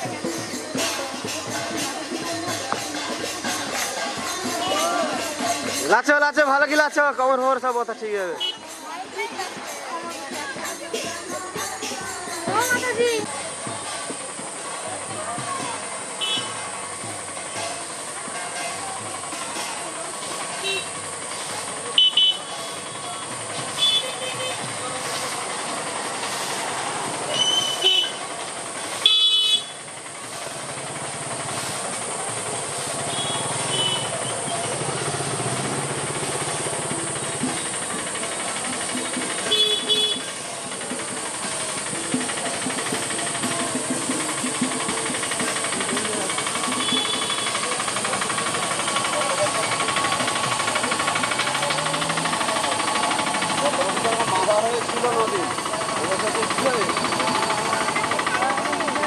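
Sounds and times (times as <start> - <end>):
people's voices: 0.0 - 29.1, 29.7 - 59.0
steady hiss: 13.4 - 58.9.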